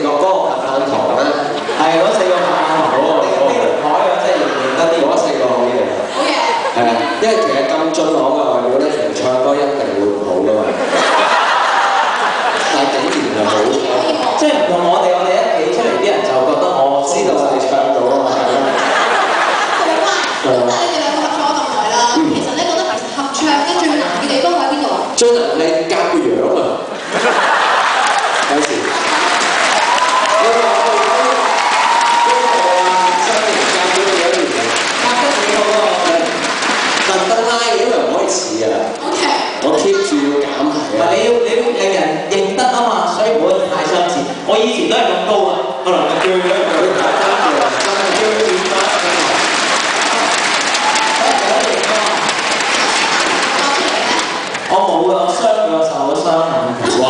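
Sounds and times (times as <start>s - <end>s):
audience applauding and cheering: 11.0s - 14.4s, 27.1s - 37.8s, 46.1s - 54.8s.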